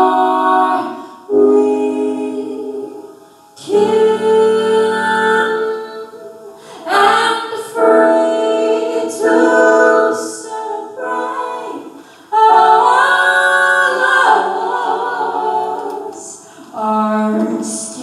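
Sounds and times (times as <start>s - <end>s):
sustained chords: 0.0s - 10.4s
woman singing jazz: 0.0s - 18.0s.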